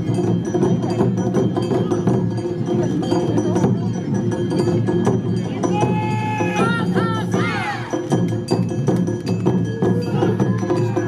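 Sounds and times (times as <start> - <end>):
drums: 0.0 - 11.0.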